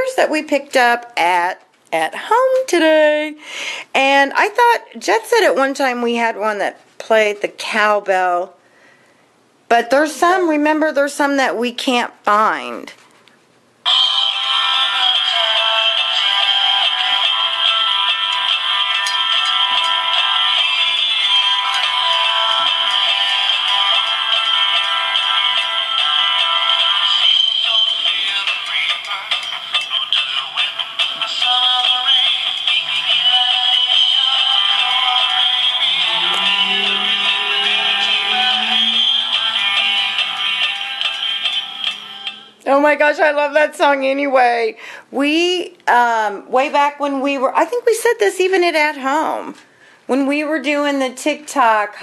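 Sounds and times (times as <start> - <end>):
toy speaker playing song with singing: 13.9 - 42.6.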